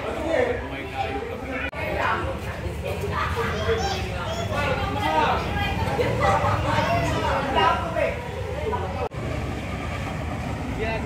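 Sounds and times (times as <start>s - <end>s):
voices talking: 0.0s - 11.0s
children's voices: 0.9s - 9.0s.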